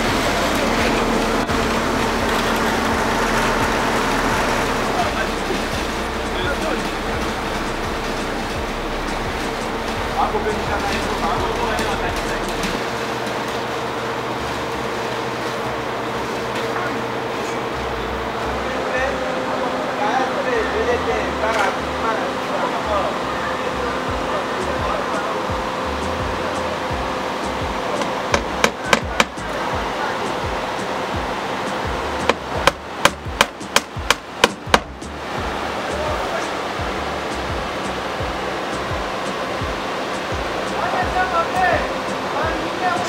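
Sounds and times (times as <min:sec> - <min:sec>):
background music with low beat: 0:00.0 - 0:19.4, 0:20.5 - 0:43.0
hammer strikes: 0:24.1 - 0:35.2.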